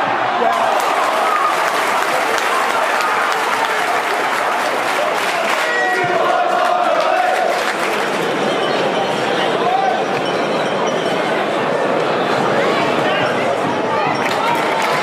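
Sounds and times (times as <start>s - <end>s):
crowd applause: 0.0s - 9.9s, 14.1s - 15.0s
crowd shouting: 0.0s - 10.2s
crowd chanting: 0.0s - 10.4s.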